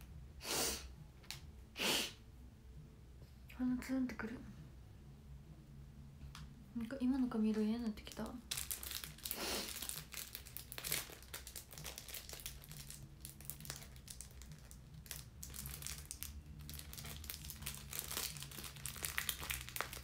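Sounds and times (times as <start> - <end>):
crinkling and rustling with clicks: 7.5 - 20.0.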